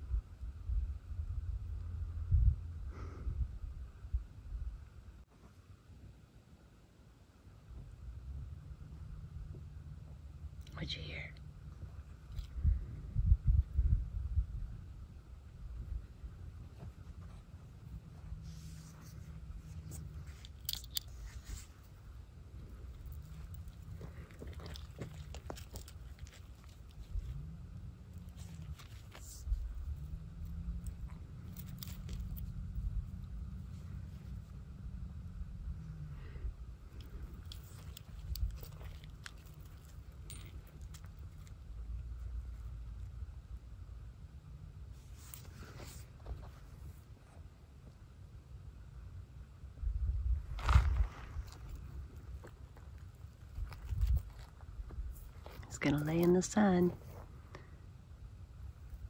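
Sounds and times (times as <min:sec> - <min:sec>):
low steady rumble: 0:00.0 - 0:59.0
footsteps crunching on gravel: 0:50.4 - 0:55.8.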